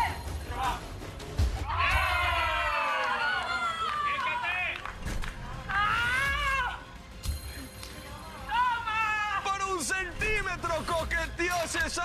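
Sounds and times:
people shouting and cheering: 0.0s - 7.0s, 8.3s - 12.0s.

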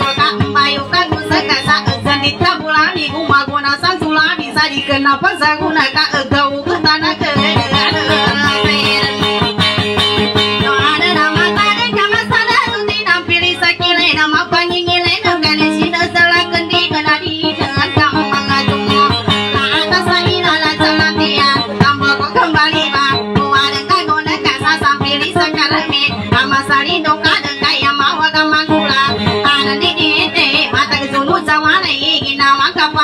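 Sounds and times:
acoustic guitar strumming: 0.0s - 33.0s
woman singing: 0.0s - 33.0s.

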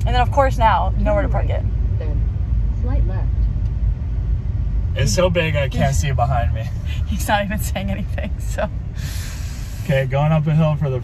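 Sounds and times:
truck engine and road rumble: 0.0s - 11.0s.

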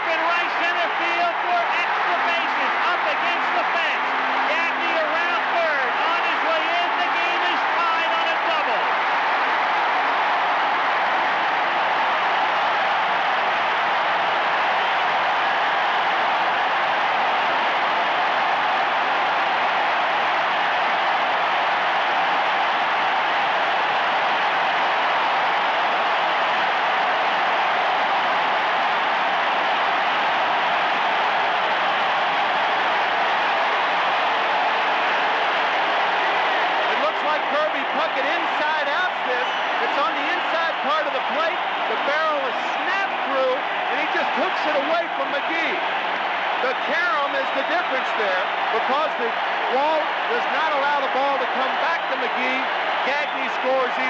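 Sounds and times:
stadium crowd cheering: 0.0s - 54.0s.

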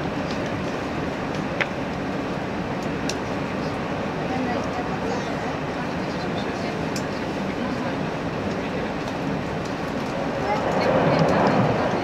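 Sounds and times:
train running noise from inside: 4.3s - 12.0s.

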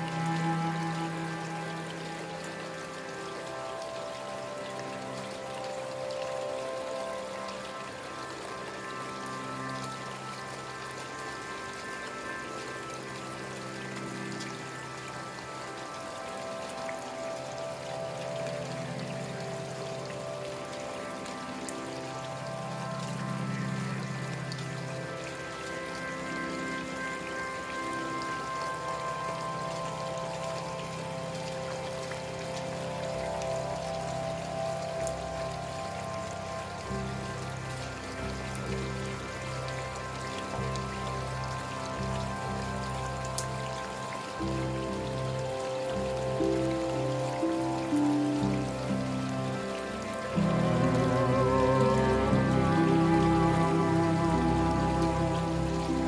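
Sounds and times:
calm new-age music: 0.0s - 56.0s
steady rainfall: 0.0s - 56.0s.

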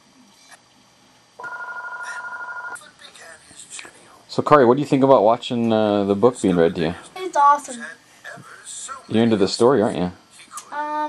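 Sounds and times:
electronic trilling ring: 1.4s - 2.8s.

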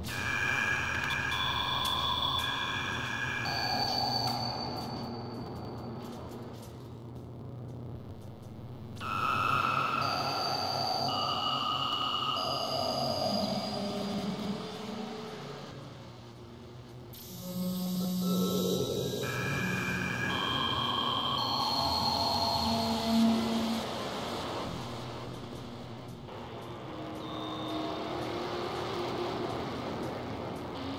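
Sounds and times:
sustained synthesizer tones: 0.0s - 6.7s, 9.0s - 16.2s, 17.2s - 30.9s
low synthesizer drone: 0.0s - 30.9s.

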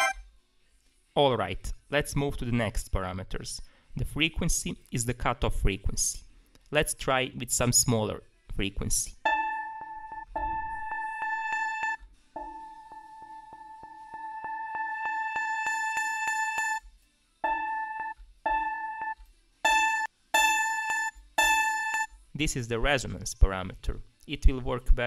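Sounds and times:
looping sampled guitar note: 9.3s - 16.8s, 17.4s - 22.0s.

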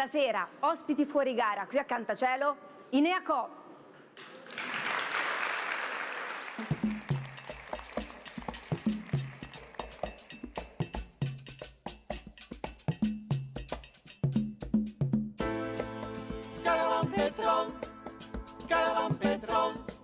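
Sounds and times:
applause: 4.2s - 10.2s
hand drum rhythm: 6.6s - 20.0s.

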